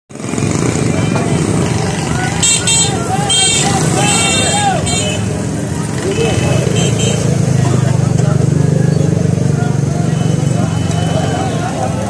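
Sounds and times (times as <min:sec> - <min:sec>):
motorcycle engines running: 0:00.1 - 0:12.0
people calling out: 0:00.8 - 0:07.3, 0:09.3 - 0:12.0.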